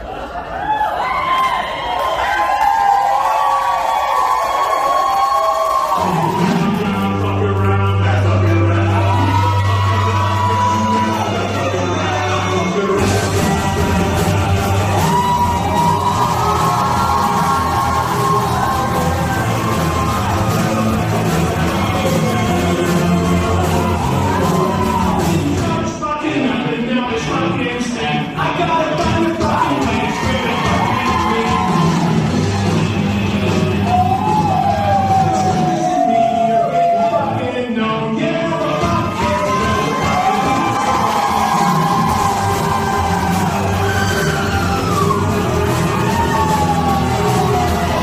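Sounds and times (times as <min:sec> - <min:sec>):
low bass: 0:06.4 - 0:25.8.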